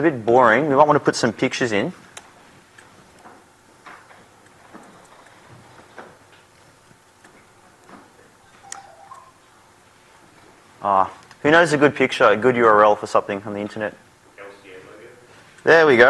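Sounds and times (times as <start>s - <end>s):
laptop keyboard typing: 8.6s - 9.3s.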